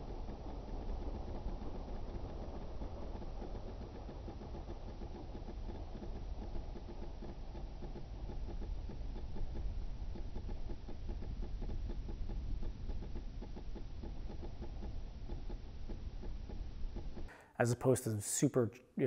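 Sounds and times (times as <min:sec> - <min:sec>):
small plane engine droning: 0:00.0 - 0:17.4.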